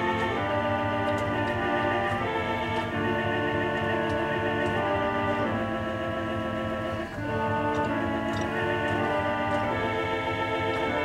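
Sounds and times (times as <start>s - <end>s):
pipe organ slow held chords: 0.0s - 11.0s.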